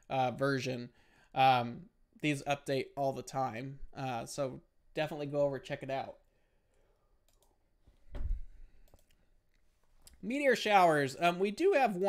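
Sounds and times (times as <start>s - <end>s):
computer mouse clicks: 7.2s - 7.6s, 8.8s - 9.2s.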